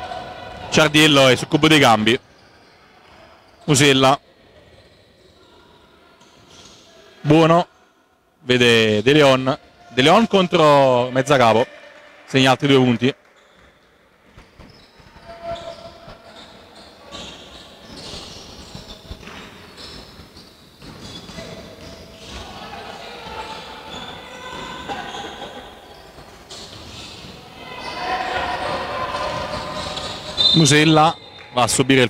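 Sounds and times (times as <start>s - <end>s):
players calling out: 22.2s - 32.0s.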